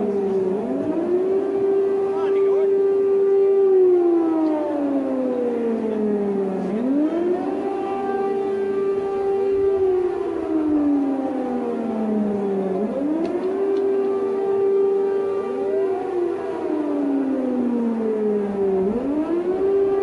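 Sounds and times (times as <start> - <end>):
air-raid siren rising and falling: 0.0 - 20.0
higher-pitched sirens: 0.0 - 20.0.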